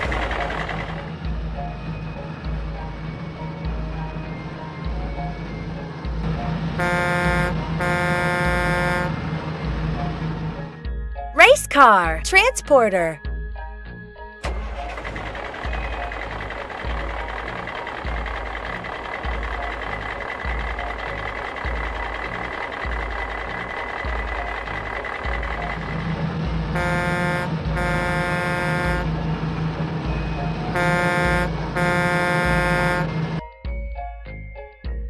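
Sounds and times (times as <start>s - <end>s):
truck engine rumble: 0.0s - 10.8s, 14.4s - 33.5s
truck horn honking: 6.8s - 9.4s, 26.7s - 29.3s, 30.7s - 33.4s.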